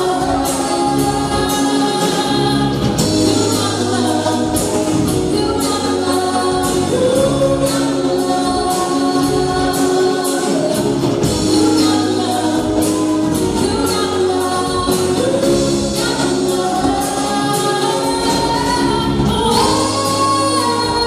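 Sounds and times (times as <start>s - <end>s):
bass line: 0.0s - 21.0s
person singing: 0.0s - 21.0s.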